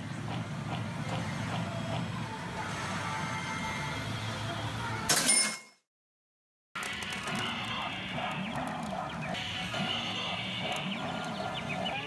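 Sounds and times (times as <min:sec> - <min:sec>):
pachinko machine music and effects: 0:06.8 - 0:12.0.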